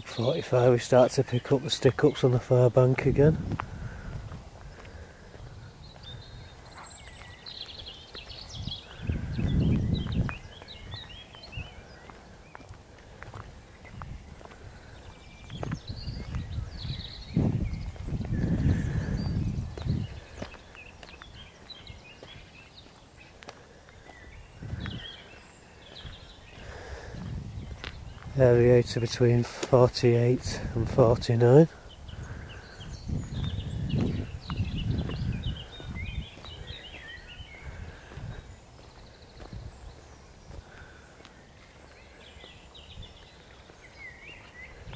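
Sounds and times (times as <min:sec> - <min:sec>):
birds chirping and trilling: 0:00.0 - 0:44.9
footsteps on a path: 0:00.0 - 0:44.9
wind gusts on microphone: 0:01.6 - 0:12.0, 0:13.2 - 0:22.4, 0:24.2 - 0:40.7, 0:42.3 - 0:43.3, 0:43.9 - 0:44.9.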